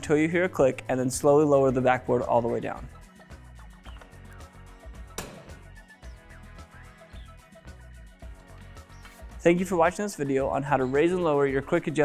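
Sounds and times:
background music with beat: 0.0s - 12.0s
sharp latch click: 5.2s - 5.6s.

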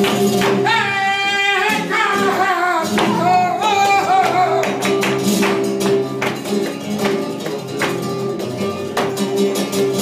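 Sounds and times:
flamenco guitar: 0.0s - 10.0s
hand-clapping: 0.0s - 10.0s.

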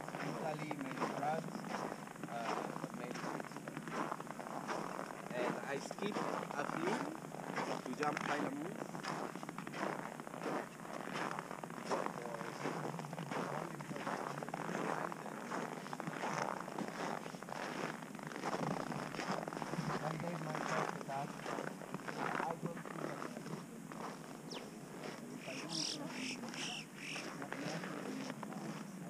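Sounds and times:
footsteps crunching on snow: 0.0s - 29.0s
indistinct voices: 18.6s - 29.0s.

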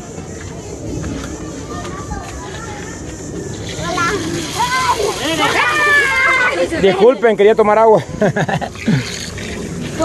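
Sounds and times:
children chattering: 0.0s - 10.0s
children shouting or laughing: 1.2s - 7.2s.

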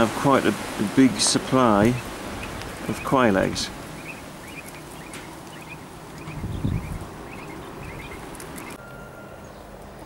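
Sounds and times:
quail chirping: 1.6s - 8.8s.

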